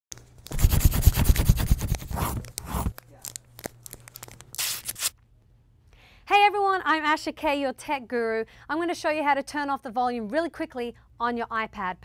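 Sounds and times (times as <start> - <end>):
paper crumpling and tearing: 0.4 - 5.2.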